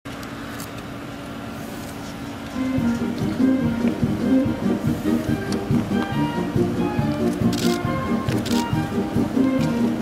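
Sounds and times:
outdoor noise: 0.1 - 10.0
vehicle engines humming: 0.1 - 10.0.

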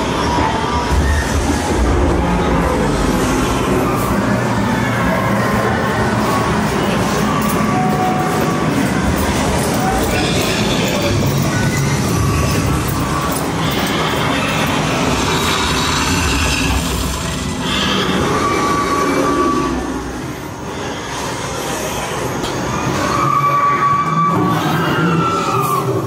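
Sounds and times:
high-pitched screech: 7.1 - 26.0.

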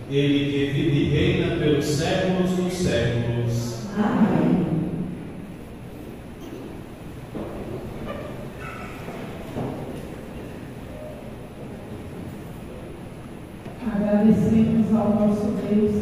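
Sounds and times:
faint murmurs: 3.6 - 13.9
people moving: 4.0 - 14.6.

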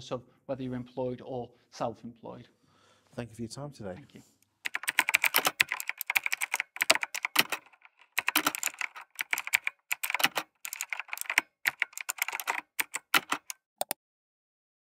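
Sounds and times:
fast typing on a keyboard: 4.6 - 14.0.

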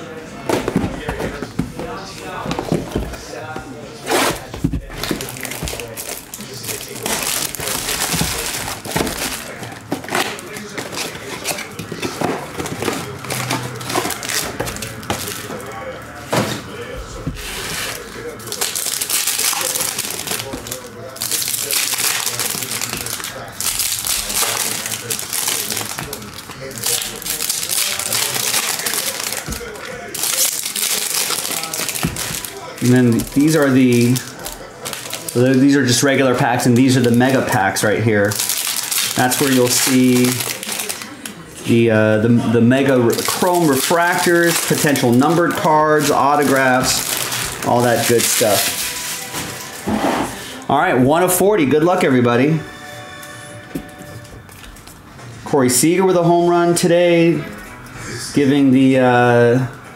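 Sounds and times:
plastic wrap crinkling: 0.7 - 15.9, 17.4 - 41.4, 42.9 - 50.5
foil pack tearing: 4.0 - 15.7, 17.4 - 35.8, 38.2 - 41.1, 43.0 - 49.8.

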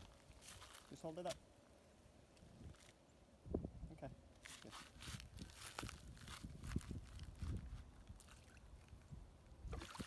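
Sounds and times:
feet rustling in pine straw: 0.0 - 1.1, 4.4 - 7.9
fish splashing in water: 9.7 - 10.0.

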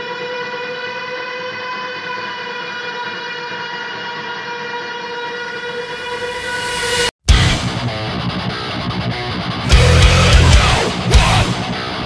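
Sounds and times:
steady pitched drone: 9.7 - 12.0.

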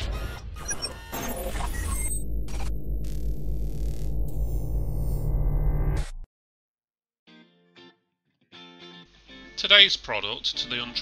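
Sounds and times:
high-pitched glitchy blips: 0.0 - 6.2
low bass drone: 1.8 - 6.2.

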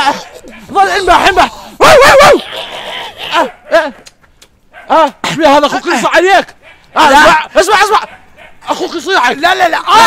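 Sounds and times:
man imitating dog barks: 0.0 - 4.1, 4.7 - 10.0.

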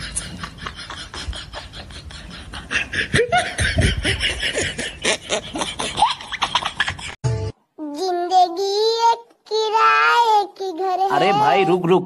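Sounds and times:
high-pitched voice singing: 7.8 - 11.8.

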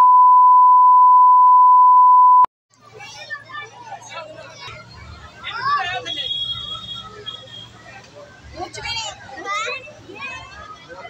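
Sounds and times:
steady test tone beep: 0.0 - 2.5
outdoor voices: 2.7 - 11.0.

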